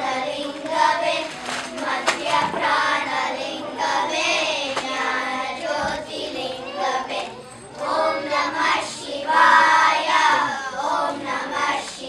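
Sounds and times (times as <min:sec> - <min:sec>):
children singing into microphone: 0:00.0 - 0:12.0.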